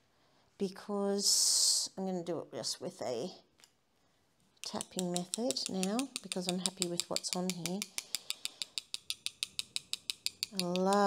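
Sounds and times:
paintbrush tapping against rod: 4.6s - 11.0s.

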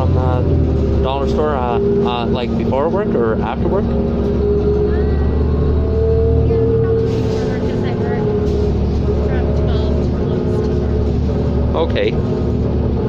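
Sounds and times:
bus engine drone with whine: 0.0s - 13.0s.

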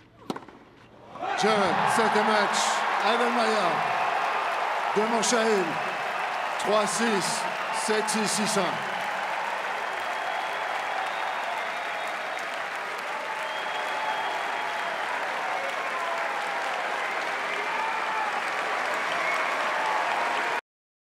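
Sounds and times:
crowd applauding and cheering: 1.2s - 20.6s
shouts and whistles: 1.2s - 20.6s.

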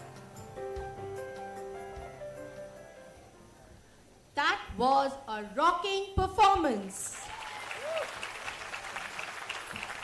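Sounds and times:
crowd applause: 7.1s - 10.0s.

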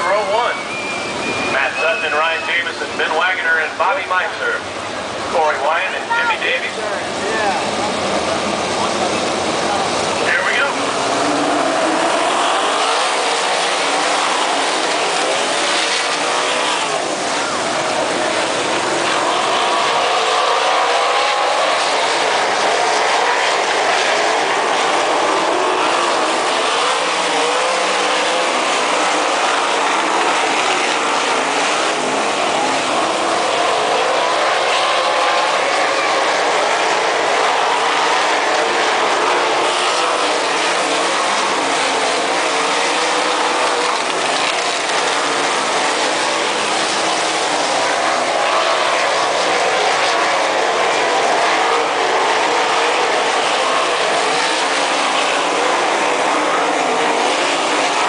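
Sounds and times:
race car engines: 0.0s - 58.0s.

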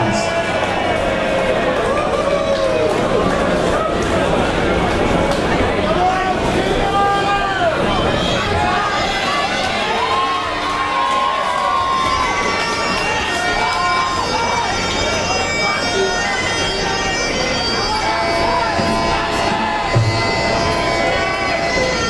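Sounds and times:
crowd noise: 0.0s - 22.0s.

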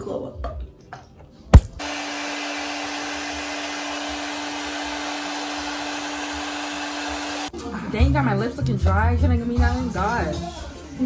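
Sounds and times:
hair dryer blowing: 1.6s - 7.5s.

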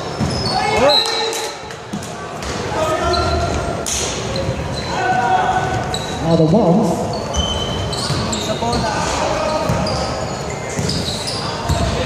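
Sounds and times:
players' voices echoing: 0.0s - 12.0s
basketball bouncing on wooden floor: 7.3s - 8.9s.

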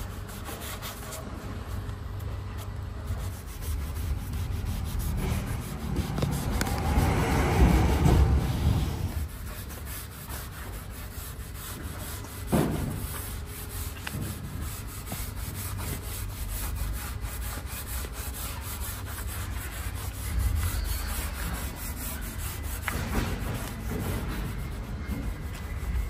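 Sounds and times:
sponge pad rubbing on wood: 3.1s - 26.0s.

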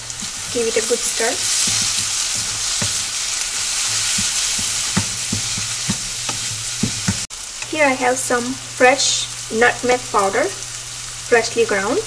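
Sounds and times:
wooden spatula scraping a pan: 0.0s - 7.3s
food sizzling in butter: 0.0s - 12.0s.

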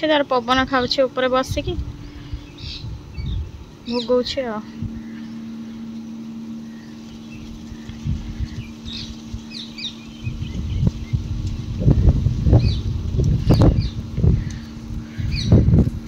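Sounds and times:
wind buffeting microphone: 0.0s - 5.9s, 6.9s - 16.0s
steady low hum: 0.0s - 16.0s
bird chirps: 2.0s - 11.3s, 13.5s - 15.6s.

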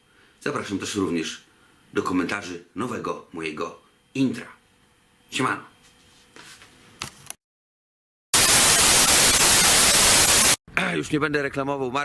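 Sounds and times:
white noise static hiss: 8.4s - 10.6s.

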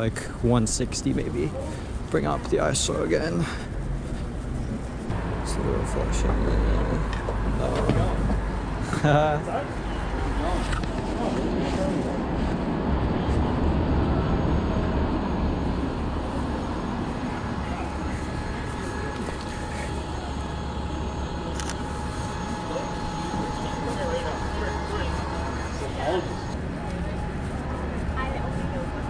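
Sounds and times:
traffic rumble: 0.0s - 29.0s
faint steady whine: 15.2s - 29.0s
indistinct voices: 17.2s - 29.0s.

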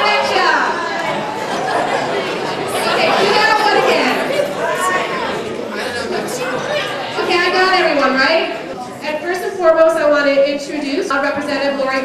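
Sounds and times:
crowd chatter in a large hall: 0.0s - 12.0s.

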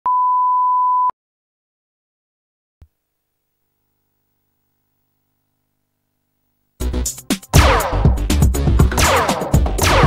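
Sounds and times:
steady pure test tone beep: 0.1s - 1.1s.

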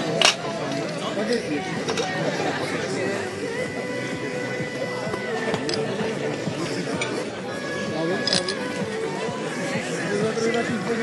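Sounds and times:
music: 0.0s - 11.0s
voices: 0.0s - 11.0s.

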